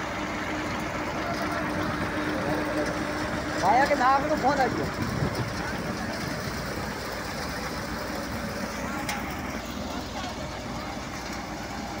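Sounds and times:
diesel tractor engine running: 0.0 - 12.0
threshing machine: 0.0 - 12.0.

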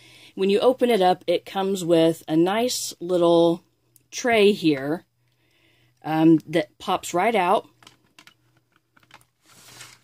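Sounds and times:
soft scrape: 9.4 - 10.0.

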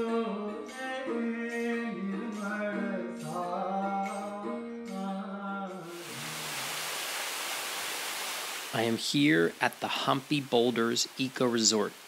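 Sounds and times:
music with singing: 0.0 - 6.4
water rushing over a dam: 5.9 - 12.0.

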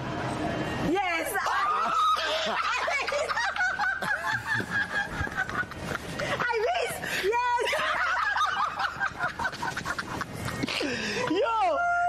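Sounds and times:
high-pitched wavering laughter: 1.4 - 6.3.

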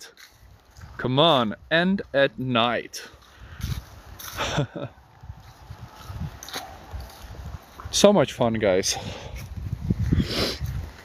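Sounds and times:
footsteps on fallen leaves: 0.1 - 1.0, 3.0 - 8.0, 8.9 - 11.0
short breathy laugh: 4.3 - 4.9.

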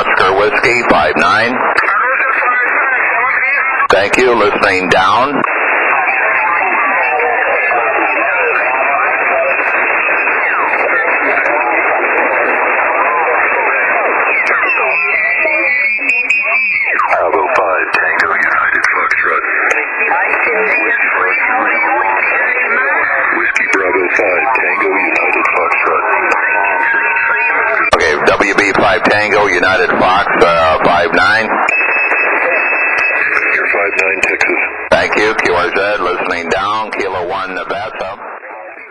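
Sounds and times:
radio voices garbled over speaker: 0.0 - 38.9.

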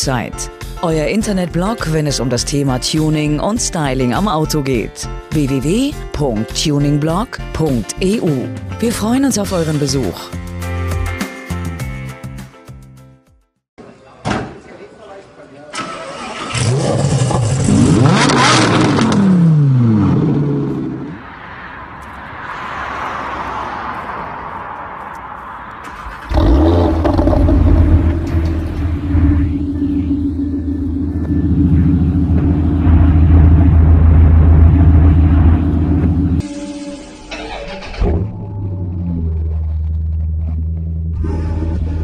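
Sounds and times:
car engine starting and rumbling: 15.8 - 21.3, 25.6 - 36.4, 37.2 - 42.0
car passing by: 20.3 - 30.1.

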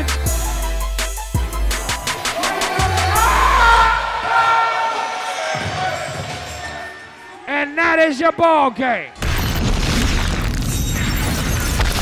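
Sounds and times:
background music: 0.0 - 9.1
crowd cheering: 1.6 - 9.2.

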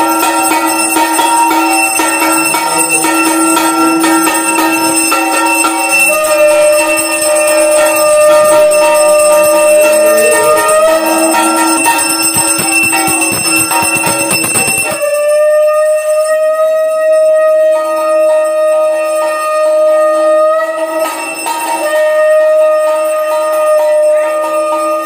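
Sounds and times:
hand bell ringing rapidly: 9.9 - 15.1.

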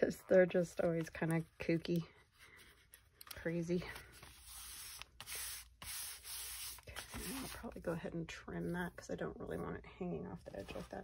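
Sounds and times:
hand rubbing paper: 4.0 - 7.7.

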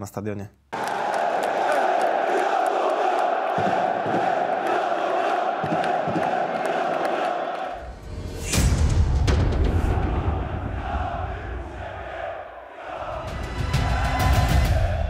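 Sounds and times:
stadium crowd chanting: 0.7 - 8.0, 9.4 - 15.0.

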